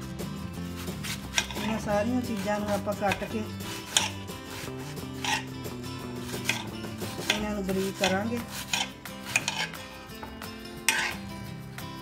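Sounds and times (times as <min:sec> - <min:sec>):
knife cutting onion: 0:00.4 - 0:11.3.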